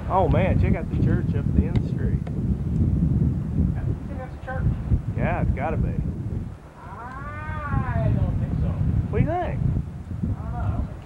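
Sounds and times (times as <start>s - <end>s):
low street rumble: 0.0s - 11.0s
long rising and falling vocal call: 6.8s - 8.1s.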